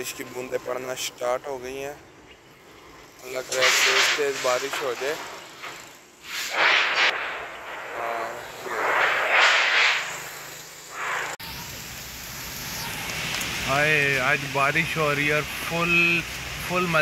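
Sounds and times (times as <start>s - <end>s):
wind and light rain hiss: 0.0s - 17.0s.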